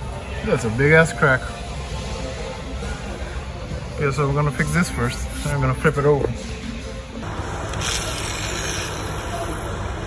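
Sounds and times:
angle grinder grinding steel: 0:07.7 - 0:09.7.

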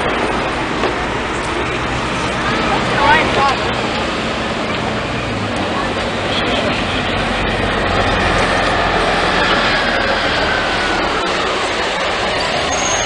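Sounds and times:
bus engine hum: 0:00.0 - 0:13.0
street traffic noise: 0:00.0 - 0:13.0.

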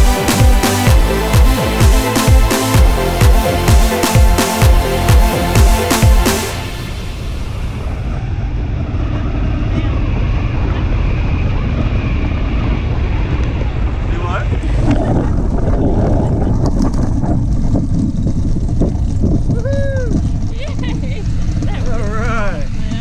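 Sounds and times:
wind buffeting microphone: 0:07.3 - 0:23.0
person exclaiming: 0:19.6 - 0:20.2.

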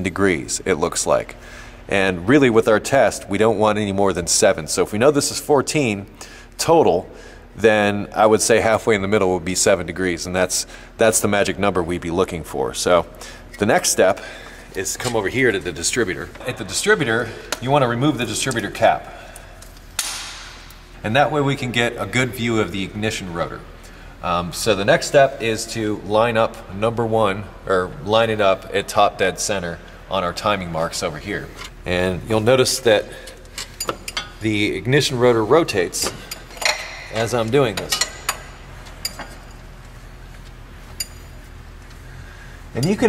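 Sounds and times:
sharp click: 0:20.0 - 0:20.8
ratchet and socket clinking: 0:40.9 - 0:41.4.

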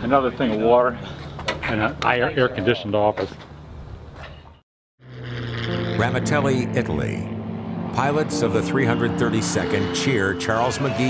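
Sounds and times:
propeller plane engine drone: 0:05.0 - 0:10.4.

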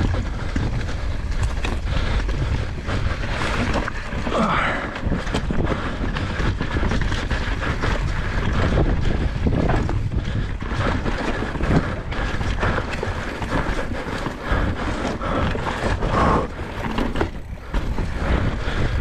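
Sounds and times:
bike rattling over rocks: 0:00.0 - 0:19.0
bike tyres rumbling on dirt: 0:00.0 - 0:19.0
wind buffeting microphone: 0:00.0 - 0:19.0.

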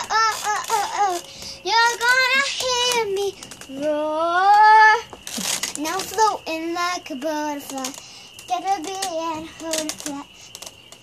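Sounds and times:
girl singing unaccompanied: 0:00.0 - 0:10.5
noisy breath-like burst: 0:07.9 - 0:08.5.

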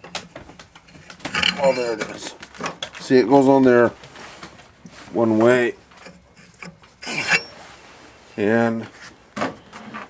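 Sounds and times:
handling noise on metal housing: 0:00.0 - 0:03.1, 0:05.4 - 0:07.7
rasping scrape: 0:00.9 - 0:02.3, 0:04.9 - 0:07.8.

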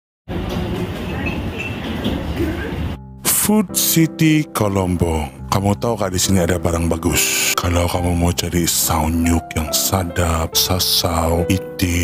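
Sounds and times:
busy food court rumble: 0:00.3 - 0:03.0.

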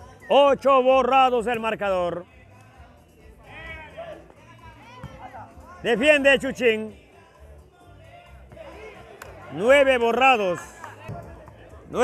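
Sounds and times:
quiet background music: 0:00.0 - 0:12.0
man speaking loudly: 0:00.3 - 0:02.2, 0:05.2 - 0:06.9, 0:09.5 - 0:10.7.

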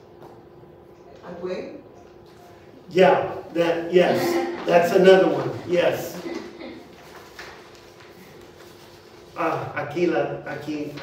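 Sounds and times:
faint steady hum: 0:00.0 - 0:11.0
paper handling: 0:04.5 - 0:09.6, 0:10.5 - 0:11.0.

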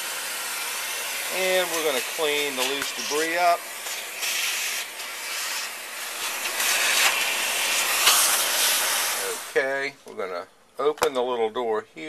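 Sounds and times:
vacuum cleaner sucking debris: 0:00.0 - 0:09.8.

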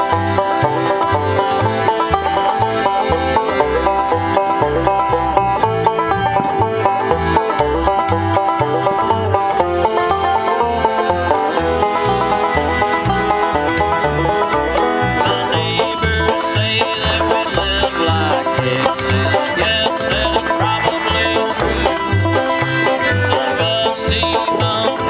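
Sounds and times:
accordion chords: 0:00.0 - 0:25.0
banjo picking rolling notes: 0:00.0 - 0:25.0
upright bass notes: 0:00.0 - 0:25.0.

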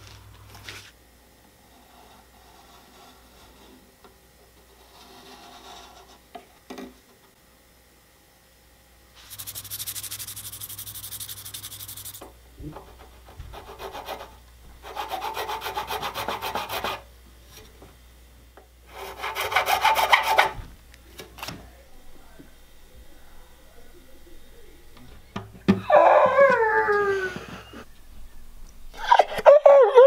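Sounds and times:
file scraping guitar nut: 0:12.8 - 0:17.0, 0:18.9 - 0:20.6.

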